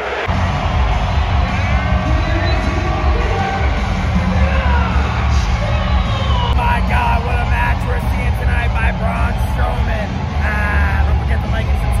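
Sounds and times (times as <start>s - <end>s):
arena crowd rumble: 0.0s - 12.0s.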